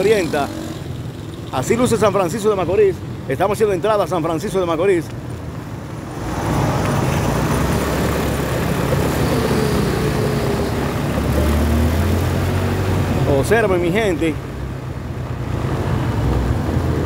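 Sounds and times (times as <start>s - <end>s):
vehicle engine and road noise: 0.0s - 17.0s.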